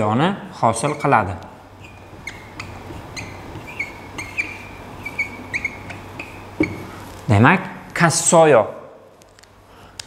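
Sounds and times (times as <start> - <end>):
marker squeaking on whiteboard: 0.6 - 7.3.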